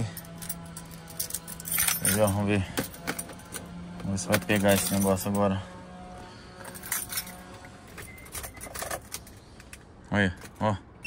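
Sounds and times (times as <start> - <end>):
car keys jangling: 0.1 - 3.6, 4.3 - 5.4, 6.6 - 9.7.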